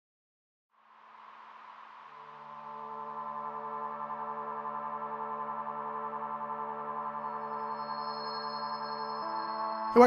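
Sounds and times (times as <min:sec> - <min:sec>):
pulsing synthesizer drone: 0:00.8 - 0:09.9.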